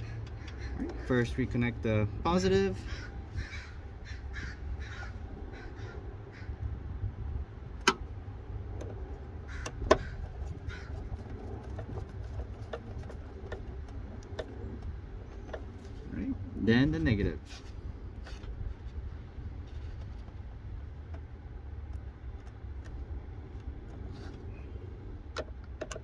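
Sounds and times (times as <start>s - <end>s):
steady low rumble: 0.0s - 26.0s
crow cawing: 2.8s - 6.6s, 9.5s - 11.0s.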